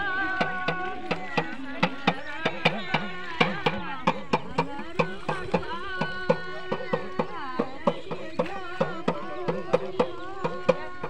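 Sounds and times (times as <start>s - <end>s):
hand drum rhythm: 0.0s - 11.0s
person singing folk melody: 0.0s - 11.0s.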